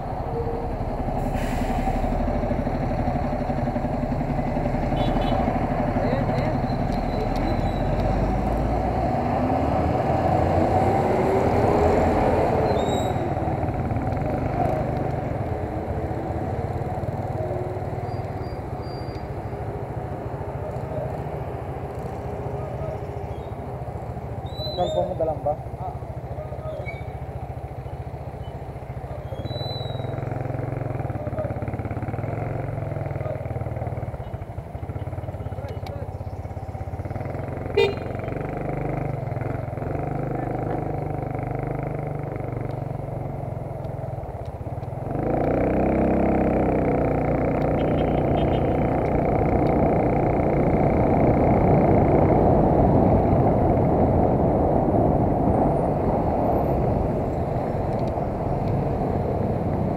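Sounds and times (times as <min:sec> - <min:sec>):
motorcycle engine rumbling: 0:00.0 - 0:59.9.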